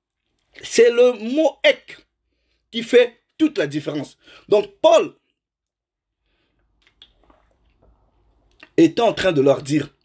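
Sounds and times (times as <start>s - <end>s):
man speaking: 0.6s - 2.1s, 2.7s - 5.3s, 8.6s - 10.0s.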